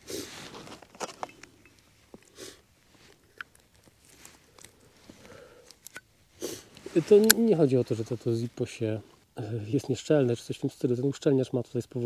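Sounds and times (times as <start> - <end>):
rustling: 0.0 - 9.2.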